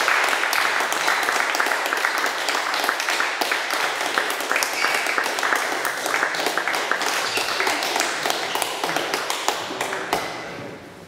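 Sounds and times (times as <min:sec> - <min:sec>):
scattered applause: 0:00.0 - 0:10.6.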